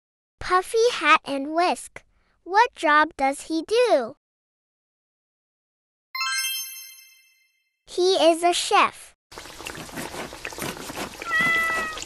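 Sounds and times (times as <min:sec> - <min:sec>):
bright chime: 0:06.2 - 0:07.6.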